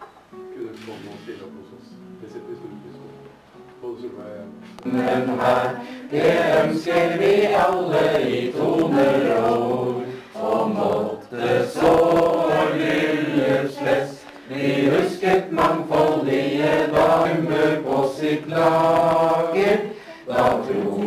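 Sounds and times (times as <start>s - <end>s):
group singing in unison: 4.8s - 21.0s.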